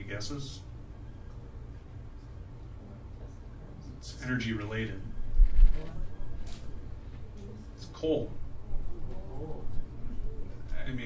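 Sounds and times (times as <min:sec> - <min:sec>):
sound system hum: 0:00.0 - 0:11.0.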